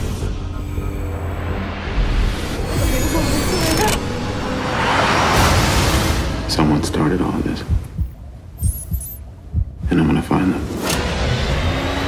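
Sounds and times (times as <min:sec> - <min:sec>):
low thudding pulses: 0:07.4 - 0:10.2
faint high electronic beeps: 0:08.6 - 0:09.2.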